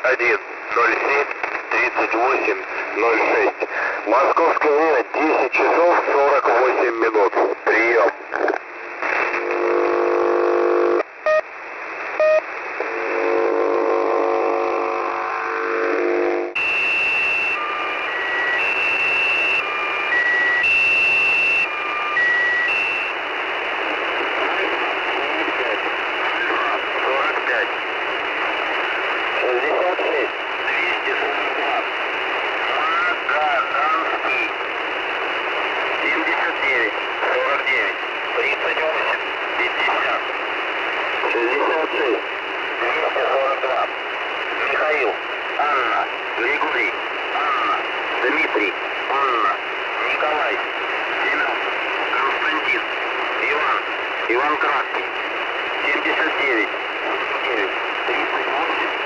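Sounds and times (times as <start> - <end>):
shortwave radio static: 0.0 - 59.0.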